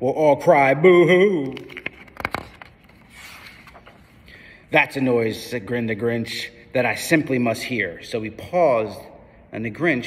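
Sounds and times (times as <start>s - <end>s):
book page turning: 1.4s - 4.3s
page rustling softly: 1.5s - 4.3s.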